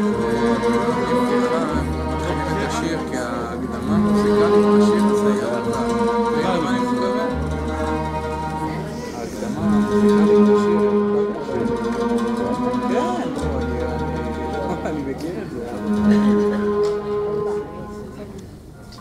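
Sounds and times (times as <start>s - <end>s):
deep sustained bass: 0.0s - 18.4s
bowed strings: 0.0s - 19.0s.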